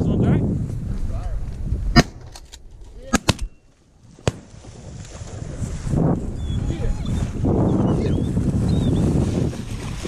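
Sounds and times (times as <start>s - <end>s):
shotgun shots: 1.9s - 2.3s, 3.1s - 3.6s.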